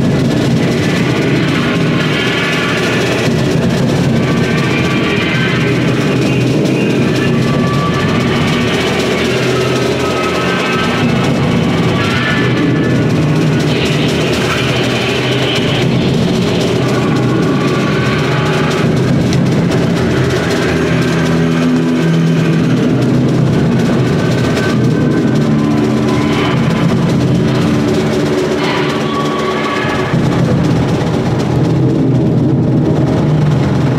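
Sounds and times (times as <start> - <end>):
drum kit: 0.0 - 33.9
held overlapping instrument tones: 0.0 - 33.9.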